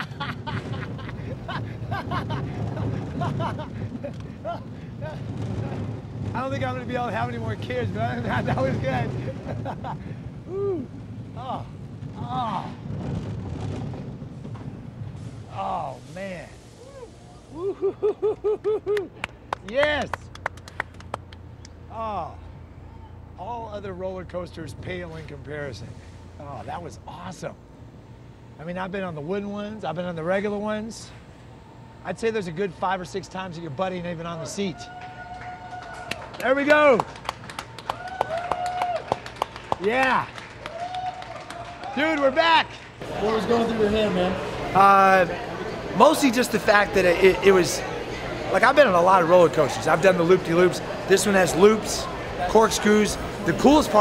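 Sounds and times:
riders whooping and laughing: 0:00.0 - 0:06.1, 0:08.1 - 0:12.8, 0:16.8 - 0:19.3
roller coaster rumbling on track: 0:00.0 - 0:54.0
people cheering: 0:10.5 - 0:12.8, 0:16.8 - 0:21.3, 0:33.9 - 0:54.0
people clapping: 0:18.6 - 0:21.8, 0:34.7 - 0:46.3.

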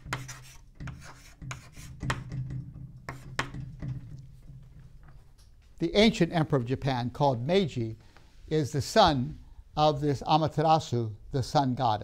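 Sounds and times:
chalk writing on chalkboard: 0:00.0 - 0:02.4, 0:03.1 - 0:03.6.

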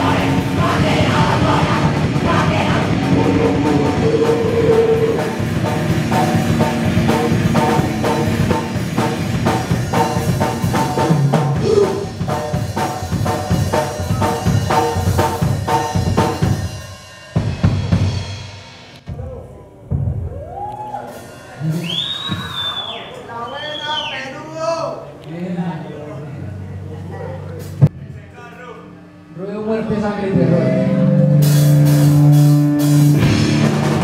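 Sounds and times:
distorted electric guitar: 0:00.0 - 0:16.4, 0:28.7 - 0:34.0
fast pounding drum kit: 0:00.0 - 0:23.0, 0:31.3 - 0:34.0.

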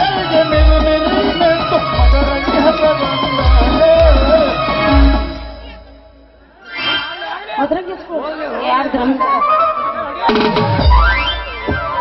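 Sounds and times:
actors talking over microphones: 0:00.0 - 0:12.0.

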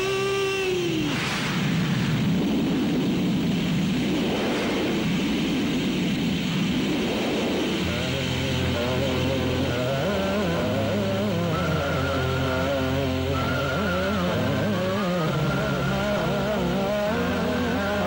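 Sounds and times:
heavy rain: 0:00.0 - 0:18.0
noisy burst: 0:00.0 - 0:18.0.

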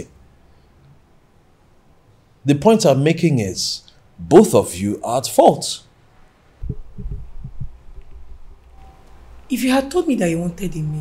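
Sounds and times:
low dull thumps: 0:06.6 - 0:08.6.

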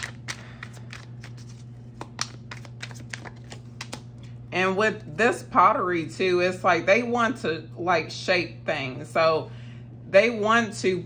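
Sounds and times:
cards shuffled and tapped: 0:00.0 - 0:04.3
steady low hum: 0:00.0 - 0:11.0.

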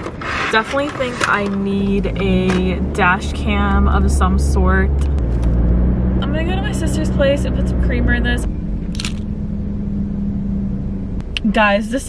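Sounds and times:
car engine rumble inside cabin: 0:00.6 - 0:12.0.

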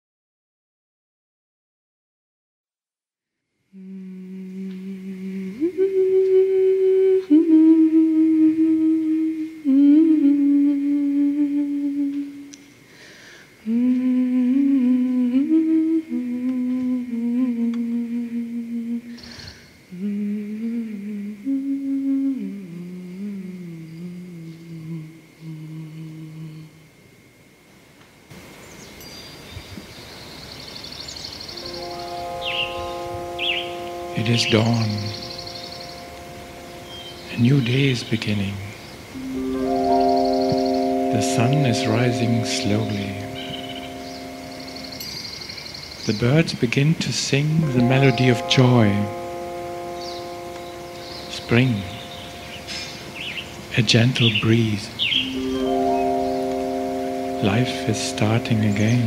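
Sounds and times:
woman humming: 0:03.7 - 0:12.7, 0:13.6 - 0:26.9, 0:31.7 - 0:44.9.

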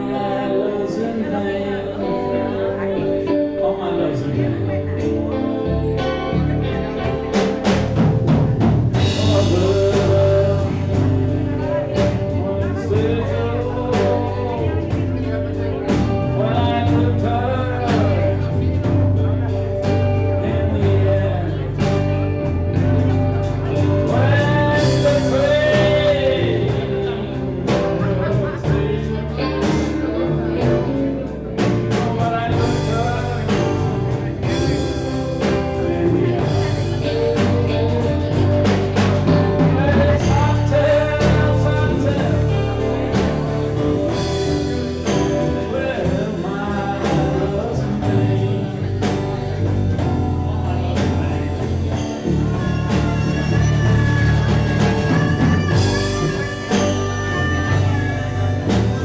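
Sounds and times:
blues band playing: 0:00.0 - 0:59.0
guitar lead with bending notes: 0:00.0 - 0:59.0.

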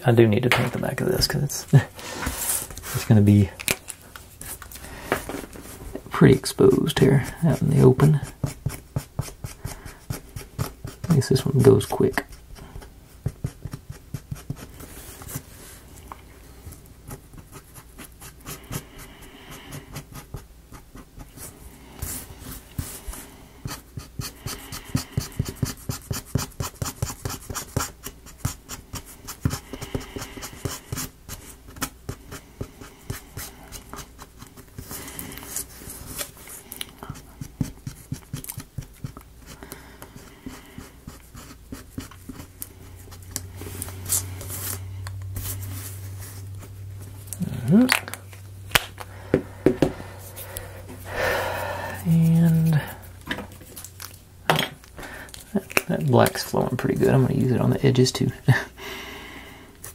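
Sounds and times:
faint steady hum: 0:00.0 - 0:59.9
brush scratching paint on wood: 0:52.0 - 0:53.1.

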